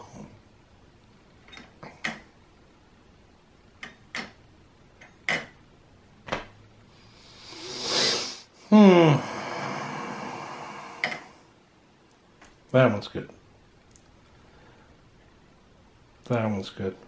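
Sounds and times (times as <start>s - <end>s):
hiss: 7.1s - 8.5s.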